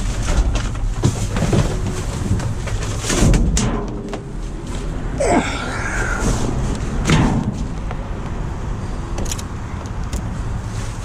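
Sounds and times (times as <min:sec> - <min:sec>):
wind rumbling on microphone: 0:00.0 - 0:11.0
rush of noise: 0:04.5 - 0:09.4.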